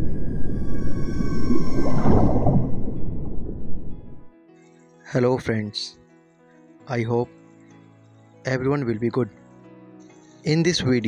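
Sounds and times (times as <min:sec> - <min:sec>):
whale call: 0:00.0 - 0:03.0
low steady drone: 0:00.0 - 0:04.3.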